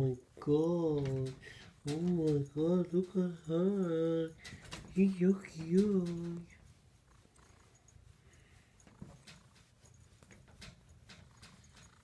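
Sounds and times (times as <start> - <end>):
faint clicks and taps: 0.5 - 6.6, 8.8 - 12.0.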